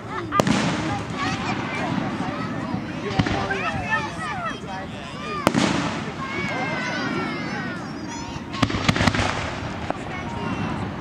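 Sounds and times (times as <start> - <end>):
firework shells bursting: 0.4 - 3.7, 5.4 - 6.4, 8.5 - 10.3.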